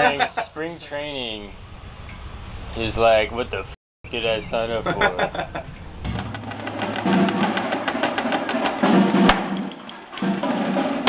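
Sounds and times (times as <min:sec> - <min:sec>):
marching snare drums: 0:06.1 - 0:11.0.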